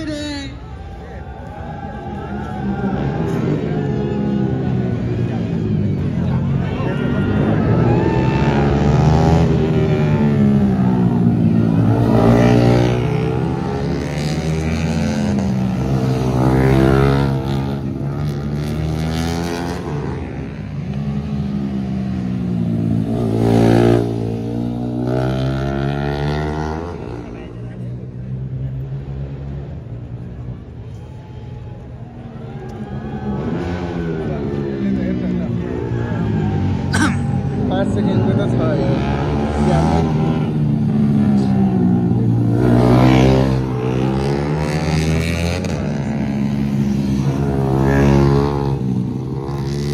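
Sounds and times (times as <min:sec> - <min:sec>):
racing motorcycles passing: 0:00.0 - 0:49.9.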